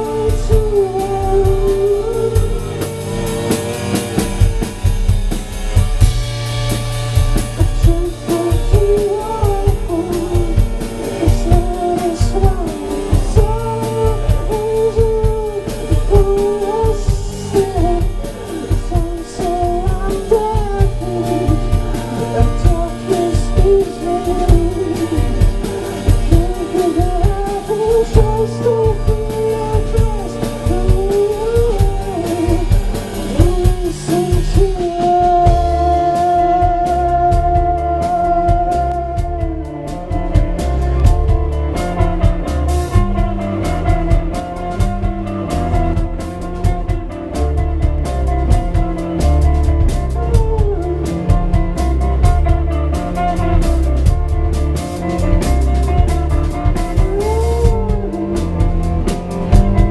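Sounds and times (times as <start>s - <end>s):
person singing: 0.0s - 4.7s, 7.4s - 59.9s
bass guitar: 0.0s - 59.9s
drum kit: 0.0s - 59.9s
electric guitars: 0.0s - 59.9s.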